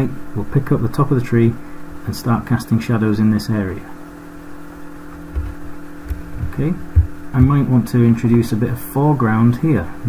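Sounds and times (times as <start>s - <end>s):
low electrical hum: 0.0s - 10.0s
soft low thumps: 5.1s - 7.8s
person saying okay: 6.4s - 6.8s.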